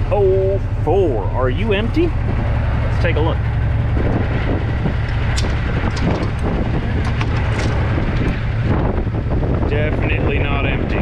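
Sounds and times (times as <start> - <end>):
truck engine idling: 0.0 - 11.0
metal door latch clanking: 5.1 - 8.4.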